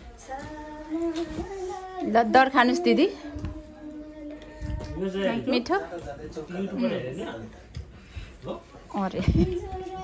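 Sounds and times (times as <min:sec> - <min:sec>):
child singing: 0:00.0 - 0:05.5, 0:09.3 - 0:10.0.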